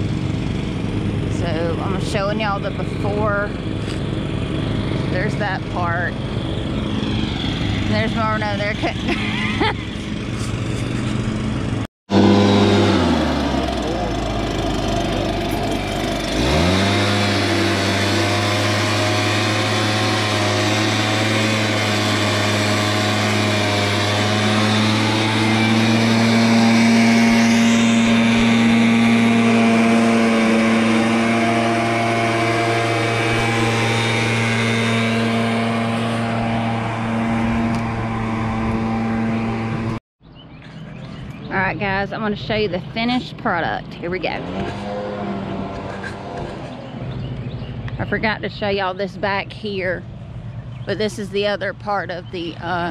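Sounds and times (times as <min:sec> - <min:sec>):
leaf blower engine: 0:00.0 - 0:40.0, 0:40.6 - 0:52.9.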